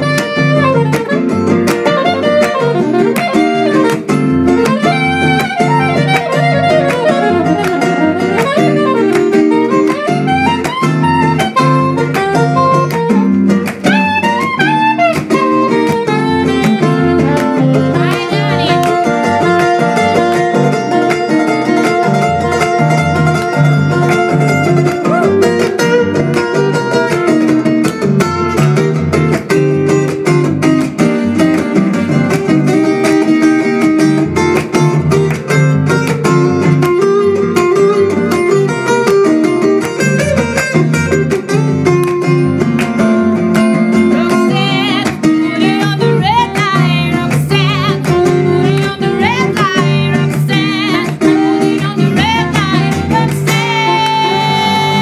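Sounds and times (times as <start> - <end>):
soprano saxophone melody: 0.0 - 27.2
acoustic guitar strumming: 0.0 - 55.0.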